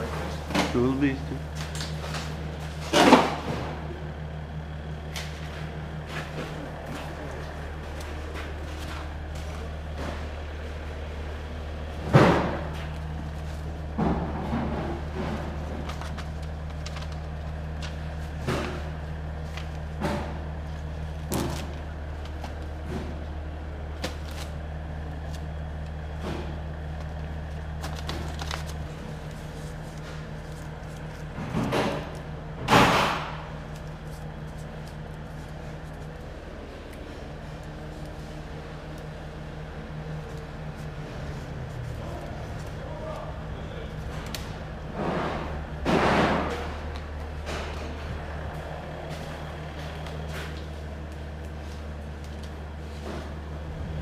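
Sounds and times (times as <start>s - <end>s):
low machine hum: 0.0s - 54.0s.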